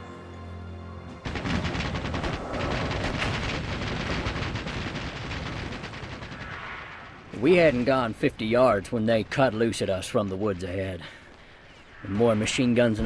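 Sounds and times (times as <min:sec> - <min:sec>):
machine-gun fire: 0:01.2 - 0:07.3.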